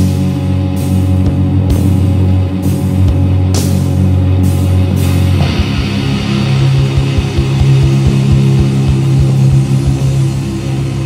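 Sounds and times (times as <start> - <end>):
distorted electric guitars and bass: 0.0 - 11.0
kick drum beats: 6.7 - 10.0.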